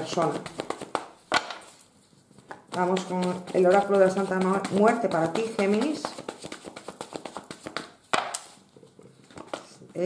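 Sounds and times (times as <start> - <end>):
cards being shuffled: 0.0 - 10.0.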